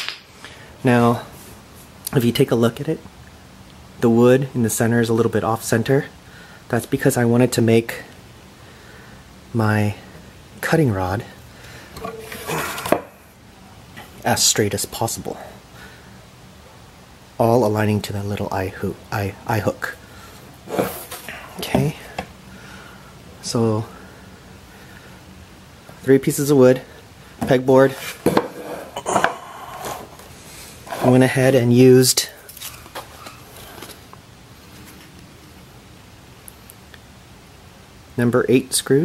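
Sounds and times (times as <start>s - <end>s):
wooden frame scraping: 12.0s - 13.2s, 20.6s - 21.3s, 27.9s - 31.4s.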